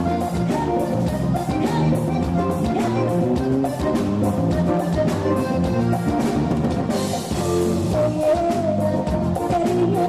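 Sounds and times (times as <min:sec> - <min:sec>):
band playing live: 0:00.0 - 0:10.0
drum kit: 0:00.0 - 0:10.0
electric guitar: 0:00.0 - 0:10.0
keyboard: 0:00.0 - 0:10.0.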